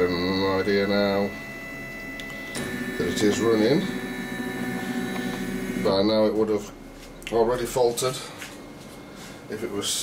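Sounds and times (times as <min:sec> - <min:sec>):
printer motors whining: 0:00.0 - 0:06.6.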